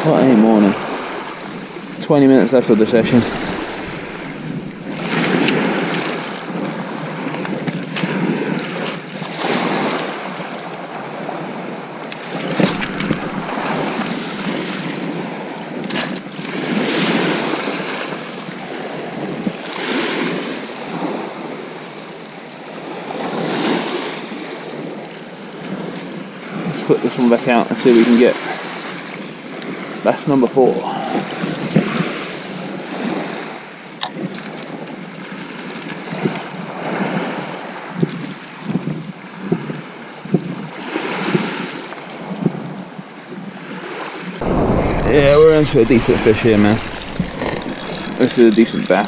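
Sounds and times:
wind on microphone: 0.0s - 9.9s, 11.4s - 21.4s, 36.1s - 41.6s, 44.2s - 49.0s
waves washing onto shingle beach: 0.0s - 38.6s, 43.0s - 49.0s.

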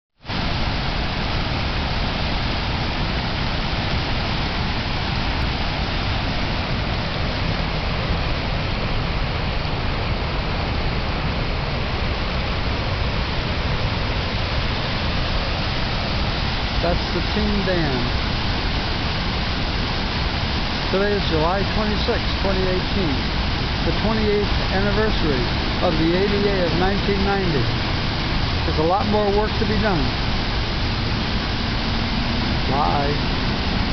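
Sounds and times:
floodwater rushing over rock: 0.2s - 33.9s.

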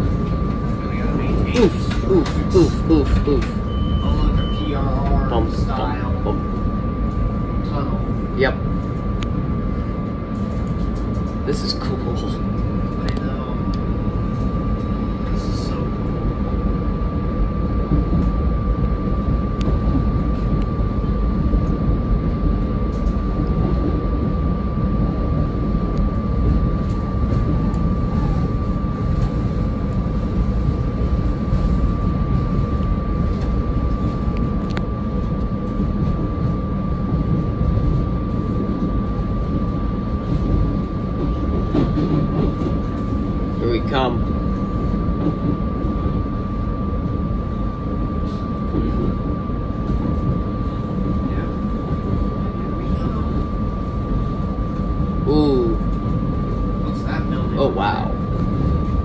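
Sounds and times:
constant high whine: 0.0s - 59.0s
train wheels rumbling on rail: 0.0s - 59.0s.

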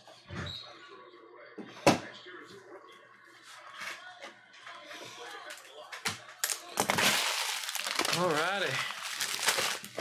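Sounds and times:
foil wrapper crinkling: 6.4s - 10.0s.

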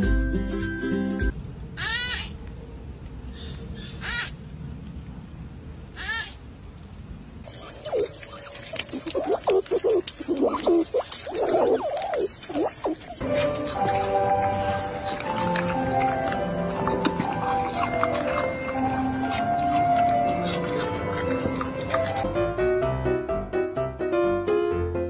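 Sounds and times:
music: 0.0s - 1.3s, 13.2s - 25.0s
squeaky animal calls: 1.8s - 2.4s, 3.4s - 4.4s, 5.9s - 6.4s, 7.5s - 13.7s
high falling animal calls: 5.9s - 6.4s, 7.5s - 13.2s
crackling rustle: 7.4s - 22.3s.

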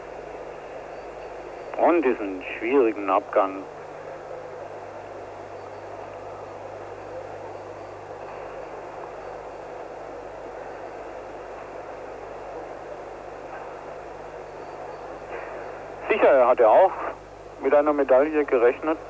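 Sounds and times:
crowd noise in arena: 3.5s - 17.3s.

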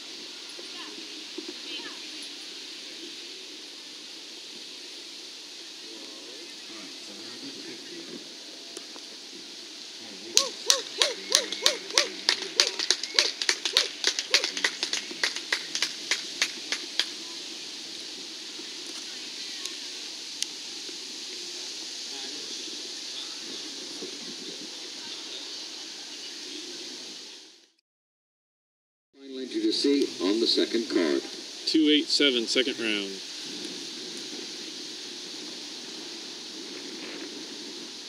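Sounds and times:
steady outdoor hiss: 0.0s - 27.8s, 29.2s - 38.0s
person clapping: 10.3s - 17.2s.

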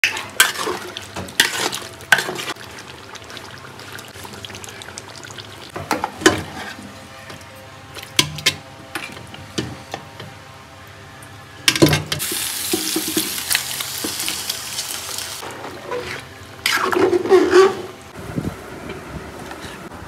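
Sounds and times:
spoon scraping metal pot: 15.7s - 18.0s.

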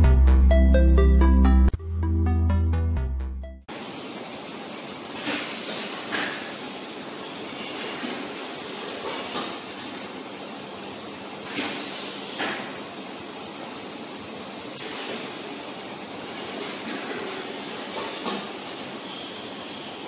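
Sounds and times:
electronic background music: 0.0s - 3.7s
labeling machine and conveyor hissing: 3.7s - 20.0s.

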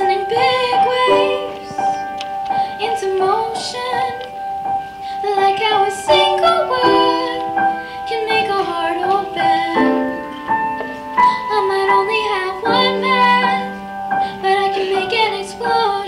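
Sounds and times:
girl singing into a microphone: 0.0s - 16.0s
piano chords: 0.0s - 16.0s.

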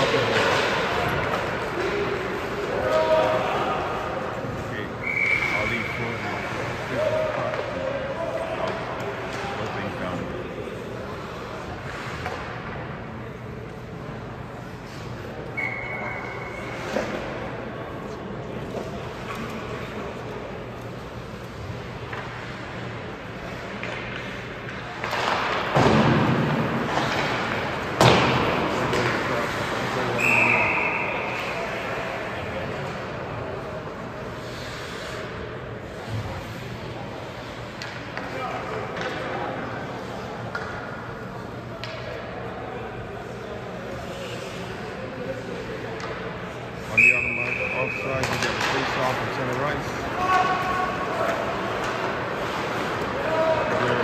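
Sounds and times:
hockey puck and sticks knocking: 0.0s - 3.4s, 21.4s - 31.6s, 35.9s - 42.4s, 45.7s - 54.0s
puck hitting the boards: 23.8s - 29.6s, 48.2s - 49.2s.

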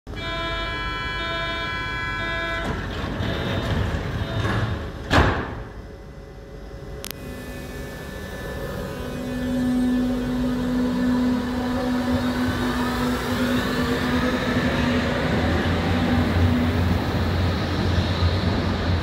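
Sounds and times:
train drive humming: 0.1s - 19.0s
train whine rising in pitch: 6.4s - 19.0s.

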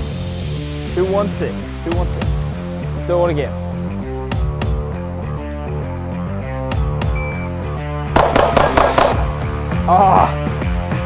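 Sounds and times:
rock music with guitar: 3.6s - 9.9s
handgun shots: 8.2s - 9.4s.

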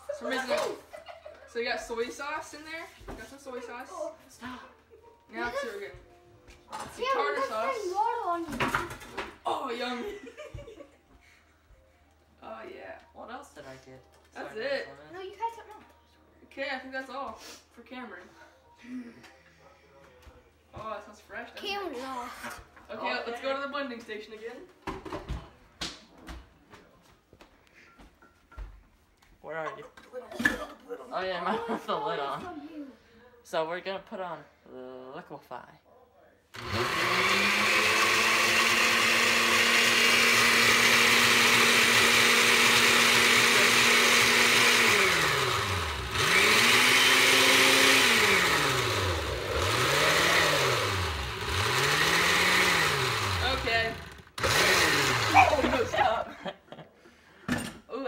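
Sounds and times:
blender motor pulsing: 36.6s - 56.0s.

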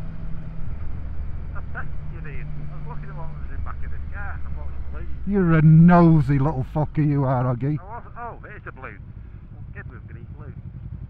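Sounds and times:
road and wind rush: 0.0s - 9.8s
motorcycle engine cruising: 0.0s - 11.0s.

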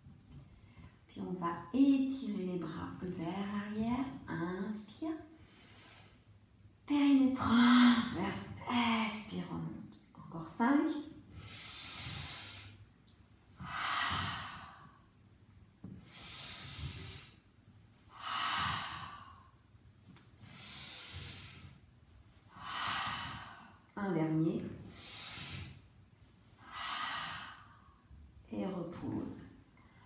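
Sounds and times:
woman breathing deliberately: 5.4s - 6.4s, 11.3s - 12.9s, 13.5s - 15.2s, 15.8s - 19.8s, 20.4s - 24.0s, 24.8s - 28.3s.

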